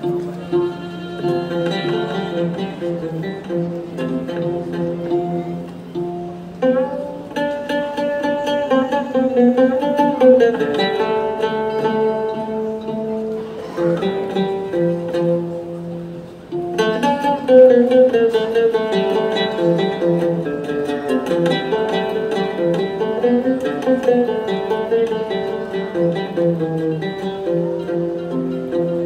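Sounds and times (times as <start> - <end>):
ouds and mandolins playing: 0.0 - 29.0.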